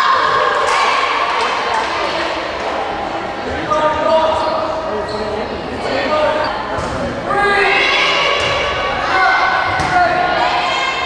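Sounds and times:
people calling out in gym: 0.0 - 11.0
volleyball thuds: 9.6 - 10.2.

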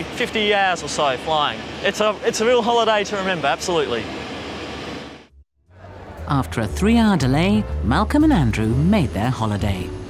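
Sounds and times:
steady rushing airport noise: 0.0 - 6.7.

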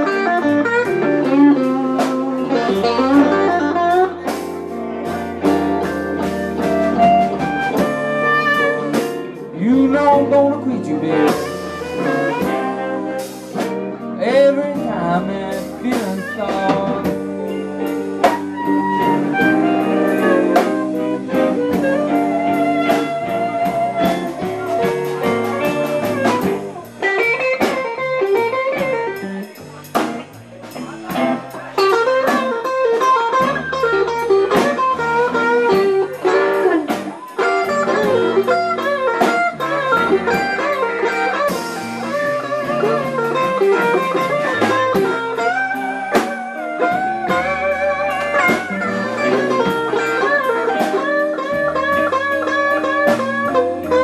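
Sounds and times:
blues band playing: 0.0 - 54.0
drum kit: 0.0 - 54.0
electric guitar bending notes: 0.0 - 54.0
walking bass line: 0.0 - 54.0.

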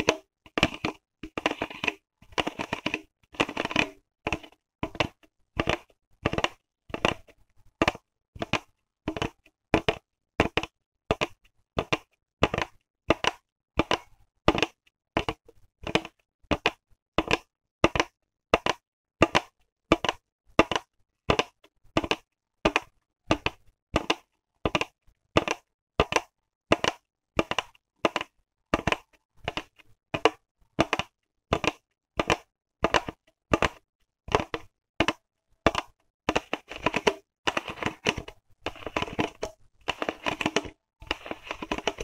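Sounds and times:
plastic bottle crinkling: 0.0 - 7.3, 35.7 - 42.0
fingernails scratching plastic bottle: 30.8 - 42.0.

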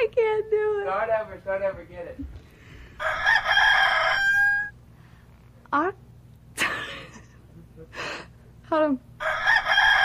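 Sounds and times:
rooster crowing: 2.8 - 4.8, 9.2 - 10.0.

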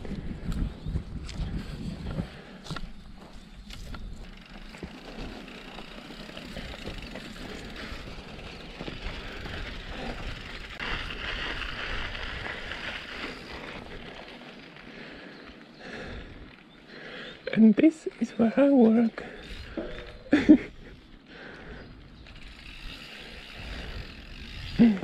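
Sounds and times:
wind rumble on microphone: 0.0 - 4.3, 22.1 - 25.0
bike tyres rolling on gravel: 0.0 - 25.0.

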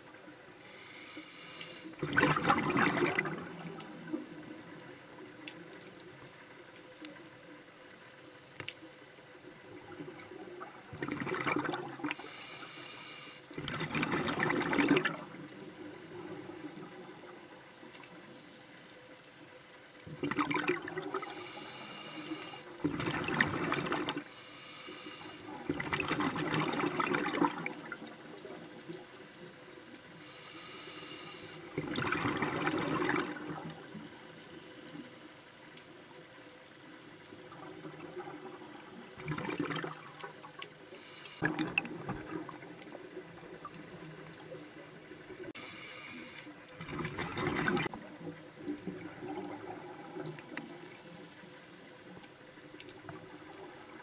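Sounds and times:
quiet water noise: 0.0 - 54.0
regulator hissing inhalation: 0.6 - 2.0, 12.1 - 13.5, 21.2 - 22.7, 24.2 - 25.5, 30.2 - 31.7, 40.9 - 41.4, 45.6 - 46.5
exhaled bubbles rushing: 2.0 - 4.7, 9.7 - 12.2, 13.6 - 17.4, 20.1 - 21.4, 22.7 - 24.3, 25.5 - 28.3, 31.6 - 33.9, 37.3 - 40.6, 41.4 - 45.4, 46.8 - 51.0.

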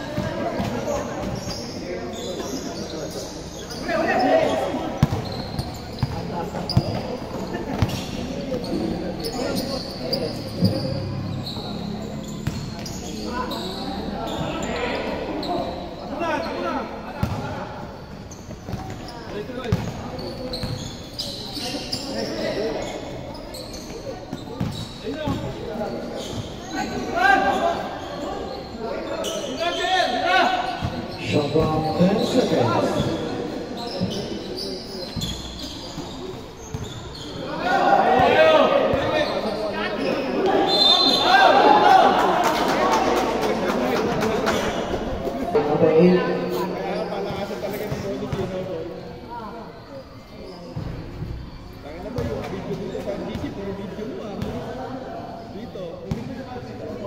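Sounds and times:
indistinct voices echoing: 19.1 - 57.0
basketball bouncing on gym floor: 19.6 - 20.0.

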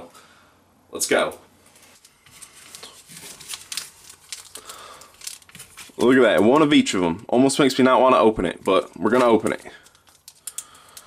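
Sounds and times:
foil wrappers crinkling: 1.7 - 6.7, 8.1 - 11.0.

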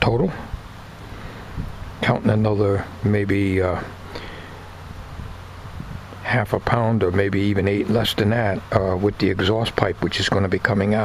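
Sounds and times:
light wind on microphone: 1.4 - 2.2, 4.8 - 6.2.

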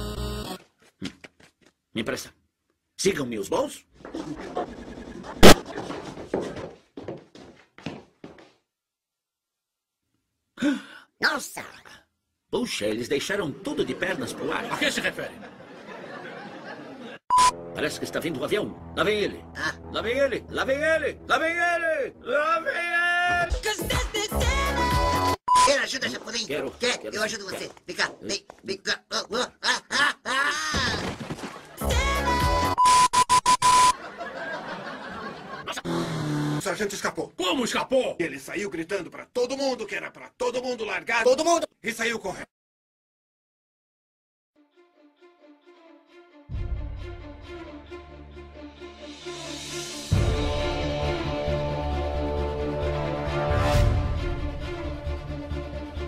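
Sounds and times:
faint scuffling: 3.9 - 8.6
steady high test-tone beep: 17.3 - 17.6, 25.5 - 25.8.

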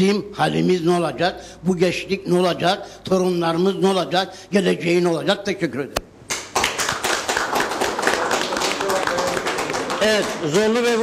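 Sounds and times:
audience applauding: 6.3 - 11.0.

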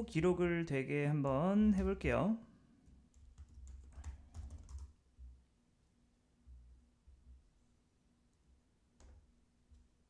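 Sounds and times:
keyboard and mouse clicking: 3.1 - 4.9.

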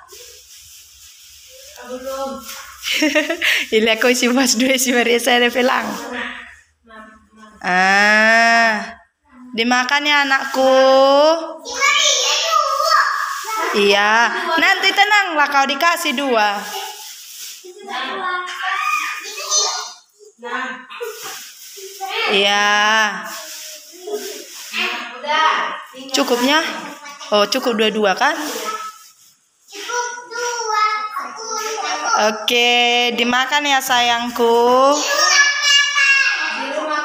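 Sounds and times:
young children talking: 11.6 - 14.5, 17.7 - 20.3, 29.7 - 32.3, 35.0 - 37.0
faint high-pitched voices: 16.6 - 27.1.

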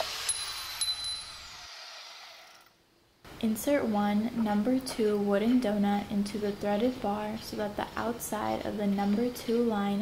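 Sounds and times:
power tool spinning down: 0.0 - 2.8.

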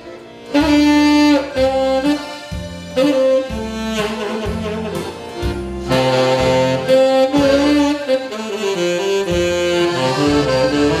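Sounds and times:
accordions playing: 0.0 - 11.0
saxophone melody: 0.0 - 11.0.

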